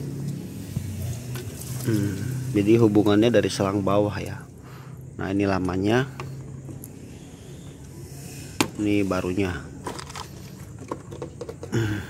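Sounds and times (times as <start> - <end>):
grunt: 11.7 - 12.0.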